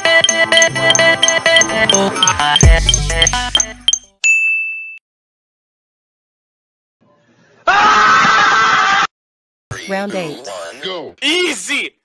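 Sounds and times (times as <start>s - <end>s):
electronic ding: 0.0s - 5.0s.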